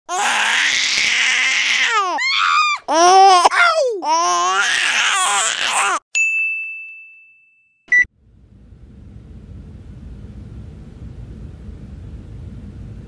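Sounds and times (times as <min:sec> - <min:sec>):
infant crying: 0:00.1 - 0:06.0.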